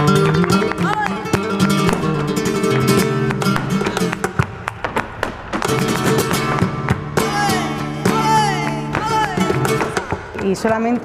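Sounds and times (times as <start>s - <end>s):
hand-clapping: 0.0s - 10.4s
dancer's footwork: 0.0s - 11.0s
flamenco guitar: 0.0s - 11.0s.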